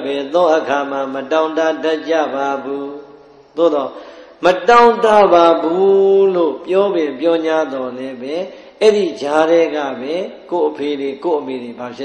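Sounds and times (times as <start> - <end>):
man preaching: 0.0 - 12.0.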